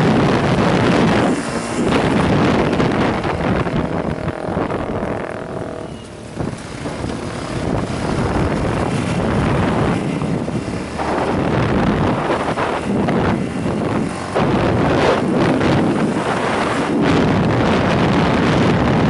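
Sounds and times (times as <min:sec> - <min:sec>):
motorcycle engine running: 0:00.0 - 0:19.0
wind rushing over microphone: 0:00.0 - 0:19.0.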